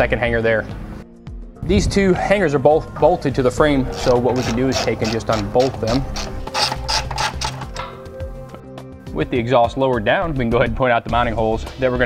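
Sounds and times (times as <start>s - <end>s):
background music: 0.0s - 12.0s
socket ratchet clicking: 3.9s - 8.1s.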